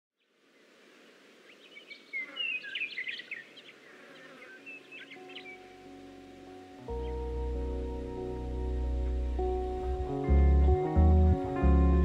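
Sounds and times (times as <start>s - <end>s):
soft background hiss: 0.2s - 10.4s
birds chirping: 0.5s - 11.6s
lofi music chords: 5.0s - 12.0s.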